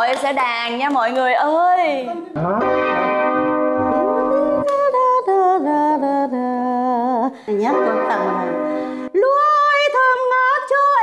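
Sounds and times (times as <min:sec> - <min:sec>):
piano melody of held notes: 0:02.4 - 0:04.7, 0:07.7 - 0:09.2.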